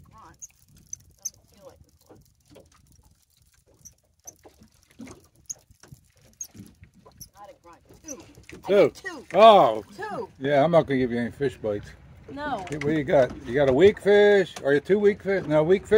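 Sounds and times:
fishing reel cranking: 0.2 - 1.8.

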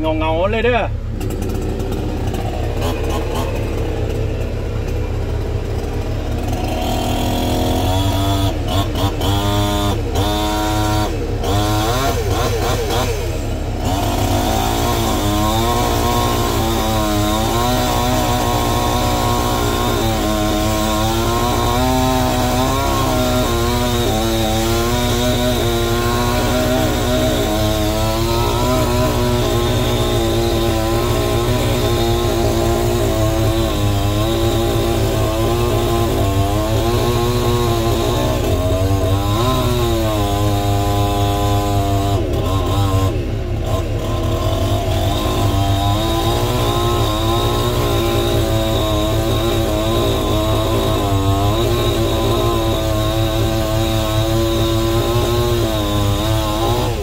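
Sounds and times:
low machine engine running: 0.0 - 17.3
chainsaw cutting logs: 0.0 - 57.0.

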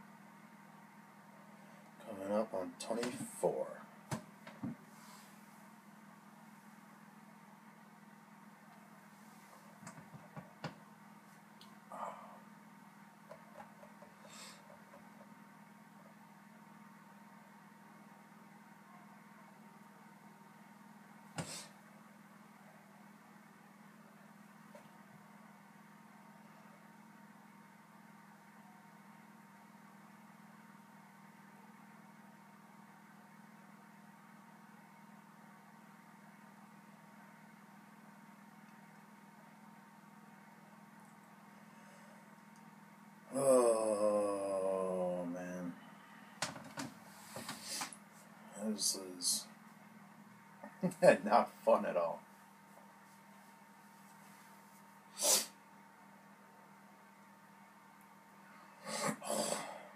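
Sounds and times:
low room hum: 0.0 - 59.9
man's throaty vocal sound: 11.9 - 12.4, 43.3 - 45.8, 58.8 - 59.9.

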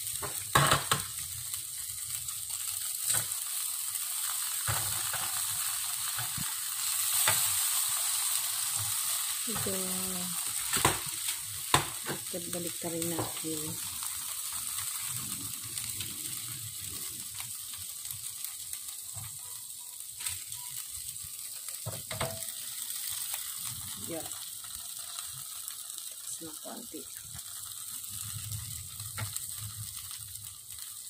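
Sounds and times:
meat sizzling on a grill: 0.0 - 31.0.

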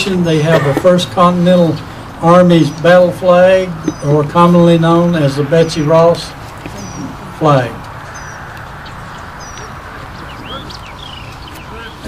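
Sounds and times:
low outdoor rumble: 0.0 - 12.0
small birds chirping: 1.0 - 12.0.

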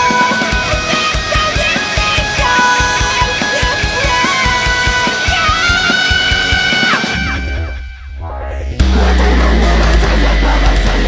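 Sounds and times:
rock drums: 0.0 - 11.0.

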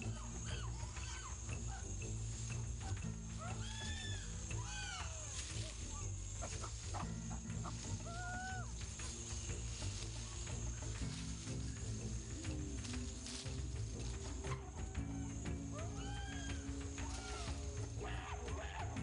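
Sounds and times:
chimpanzees screaming: 0.0 - 19.0
low music chords: 0.0 - 19.0.

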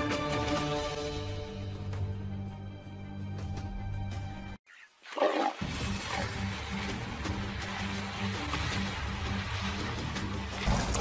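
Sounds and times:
background music with pulse: 0.0 - 4.6, 5.4 - 11.0.

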